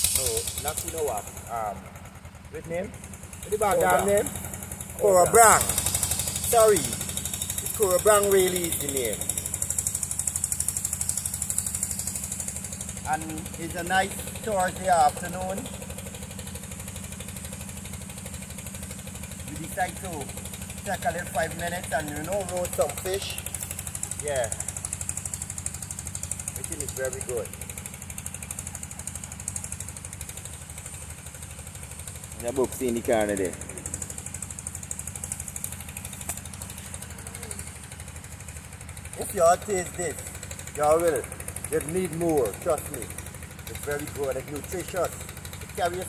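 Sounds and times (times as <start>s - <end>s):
engine running with rapid beat: 0.0s - 46.0s.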